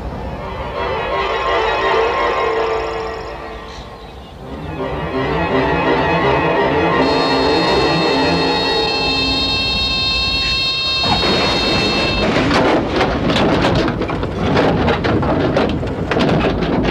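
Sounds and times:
steady high tone: 0.2s - 12.4s
plane crash: 7.0s - 16.9s
rough scraping and rumbling: 11.1s - 16.9s.

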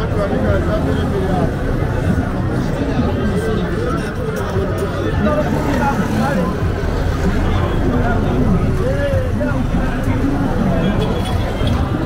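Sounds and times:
passers-by talking: 0.0s - 12.0s
motorcycle engines running: 4.2s - 12.0s.

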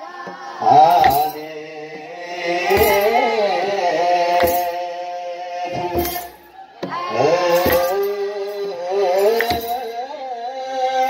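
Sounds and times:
children's choir chanting: 0.0s - 11.0s
percussion strokes: 0.3s - 1.5s, 2.6s - 5.0s, 5.7s - 10.1s.

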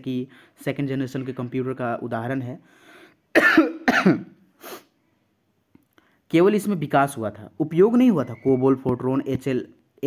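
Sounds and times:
man coughing: 3.3s - 4.4s.

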